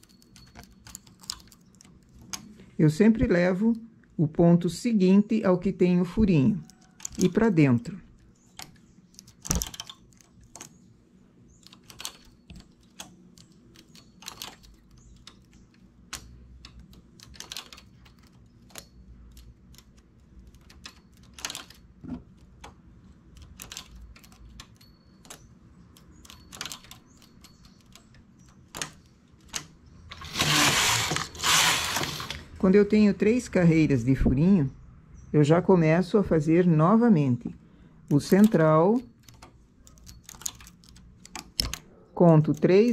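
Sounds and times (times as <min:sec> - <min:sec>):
knitting carriage clattering: 0:00.0 - 0:02.6, 0:06.2 - 0:10.9, 0:11.5 - 0:32.4, 0:38.1 - 0:42.9
small metallic clicks of needles: 0:06.6 - 0:07.5, 0:11.5 - 0:30.2, 0:38.0 - 0:42.9.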